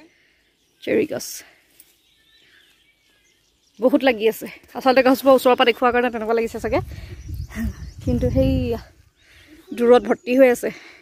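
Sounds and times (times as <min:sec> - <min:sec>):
faint bird chirps: 0:00.0 - 0:11.0.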